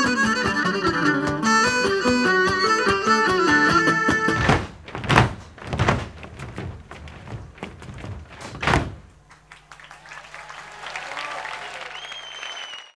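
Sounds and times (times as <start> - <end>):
feet stamping on stage: 3.7 - 9.5
audience cheering and applause: 9.2 - 13.0
whistle: 11.9 - 13.0.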